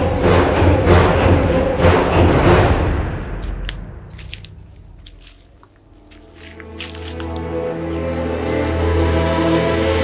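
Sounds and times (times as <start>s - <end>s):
background score music: 0.0s - 4.5s, 5.8s - 10.0s
insects and birds chirping: 0.0s - 10.0s.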